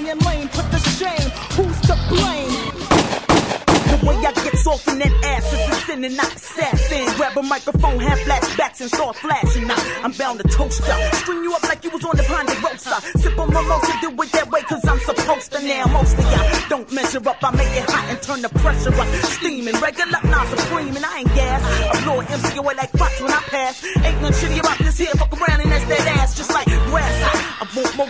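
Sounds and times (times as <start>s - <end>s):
rapping over a beat: 0.0s - 28.0s.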